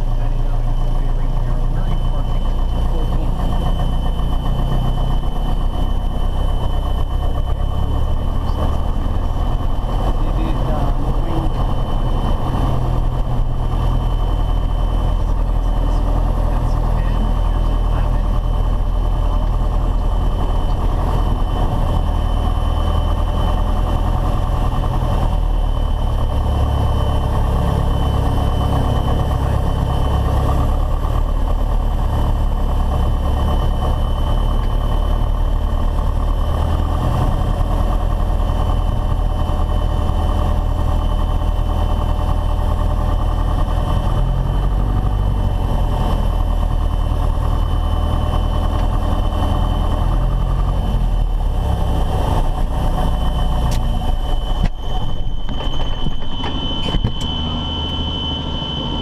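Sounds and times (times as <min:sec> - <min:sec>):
aircraft engine idling: 0:00.0 - 0:59.0
thin high whine: 0:52.6 - 0:59.0.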